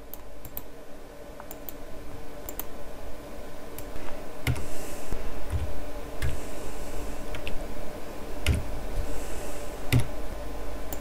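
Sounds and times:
keyboard and mouse clicks: 0.1 - 0.7, 3.8 - 4.6, 5.5 - 6.4, 7.3 - 7.6, 8.4 - 8.7, 9.9 - 10.1.

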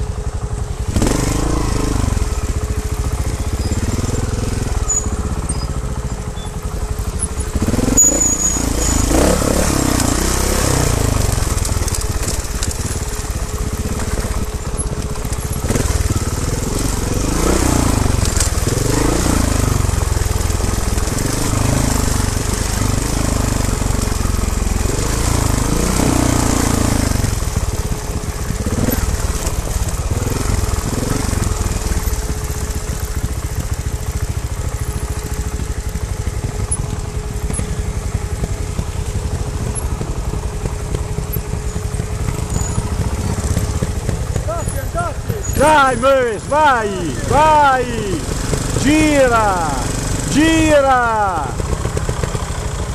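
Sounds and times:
motorcycle engine revving: 0.0 - 52.9.

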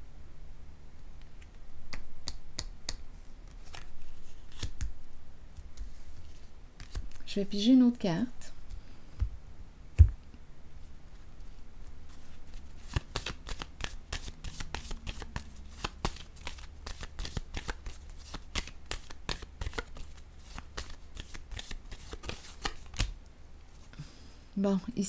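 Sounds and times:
cards being shuffled: 1.2 - 7.3, 11.1 - 23.2.

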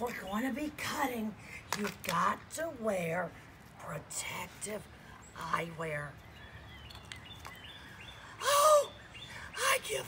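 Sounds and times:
small birds chirping: 3.2 - 10.0.

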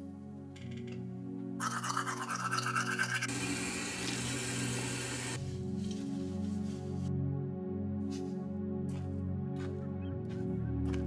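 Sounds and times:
toothbrush scrubbing teeth: 1.6 - 3.3.

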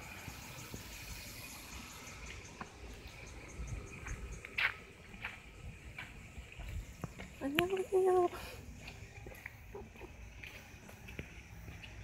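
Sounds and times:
insects chirping: 0.0 - 12.0
low outdoor rumble: 0.0 - 12.0.

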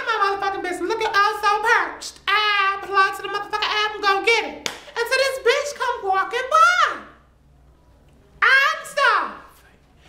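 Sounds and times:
hand clap: 4.6 - 5.0.

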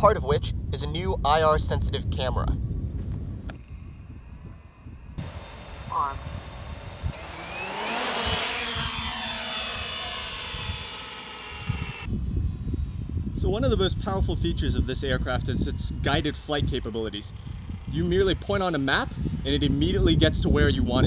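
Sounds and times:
drone propellers buzzing: 3.5 - 13.2.

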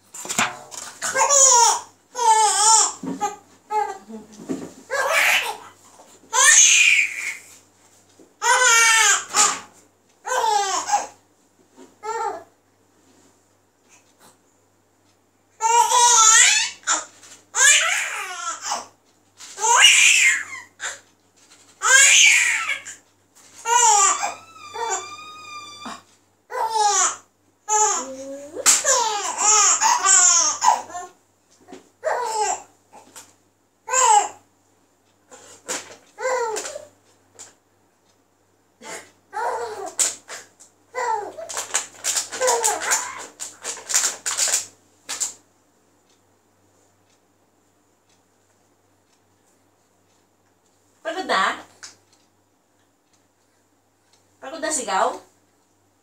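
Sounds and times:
baby laughing: 1.0 - 4.0, 23.7 - 25.1, 28.7 - 31.1
infant laughing and babbling: 1.0 - 4.3, 4.9 - 7.4, 8.4 - 11.2, 23.6 - 33.2, 38.8 - 40.2, 42.4 - 43.4
baby cooing: 23.6 - 31.2, 32.0 - 33.1, 38.8 - 40.0, 41.0 - 41.6, 42.4 - 43.4.

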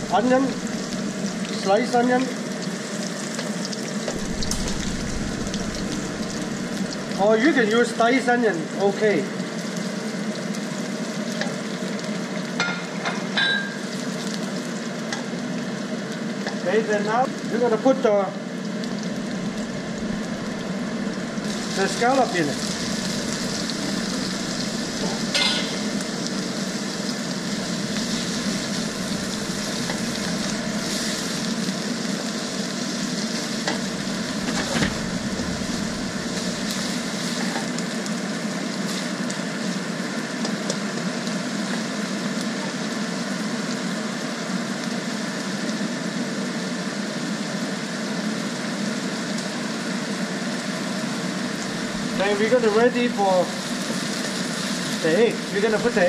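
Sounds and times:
food sizzling in hot oil: 0.0 - 56.0.

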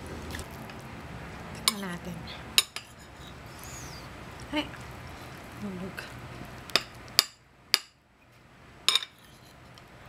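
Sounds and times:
metal spoon clinking on dish: 1.6 - 1.9, 8.9 - 9.2.

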